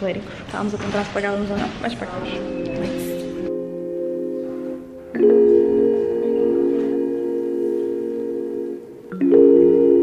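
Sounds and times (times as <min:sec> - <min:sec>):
held bell-like chord: 0:02.2 - 0:10.0.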